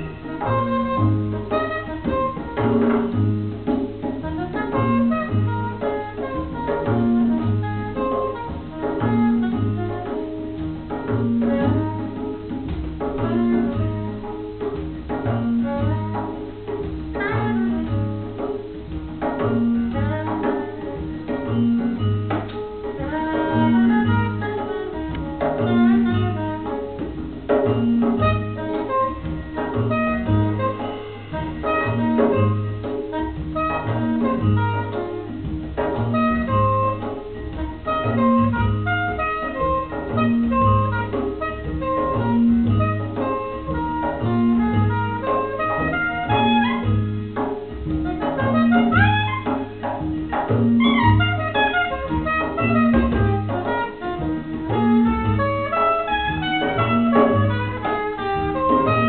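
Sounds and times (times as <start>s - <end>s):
hand percussion with cymbals: 0.0s - 59.0s
soprano saxophone: 0.0s - 59.0s
upright double bass: 0.0s - 59.0s.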